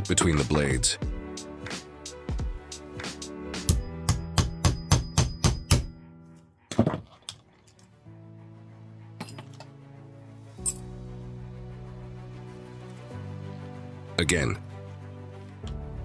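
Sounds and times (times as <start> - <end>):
background music: 0.0 - 16.0.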